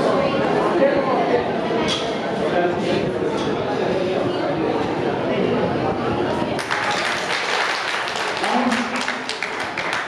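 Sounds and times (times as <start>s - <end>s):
crowd voices: 0.0s - 10.0s
audience clapping: 6.6s - 10.0s.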